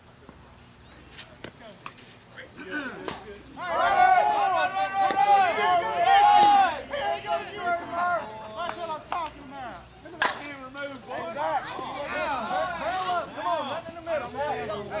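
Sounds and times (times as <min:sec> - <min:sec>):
players shouting: 0:02.6 - 0:15.0.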